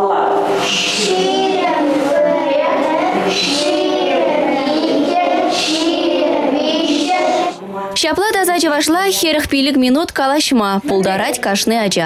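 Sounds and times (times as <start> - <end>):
children singing together: 0.0 - 7.6.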